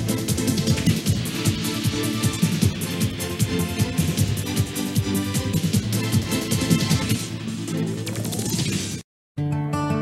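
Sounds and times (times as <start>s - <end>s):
electronic music: 0.0s - 9.0s.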